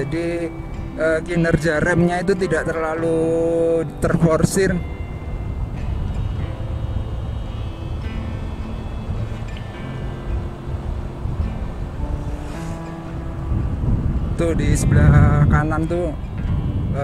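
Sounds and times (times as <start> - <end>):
soft background music: 0.0 - 17.0
wind rushing over microphone: 0.0 - 17.0.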